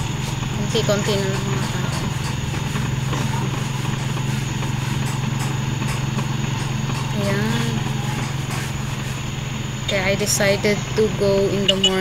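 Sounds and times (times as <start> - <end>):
motorcycle engine droning: 0.0 - 12.0.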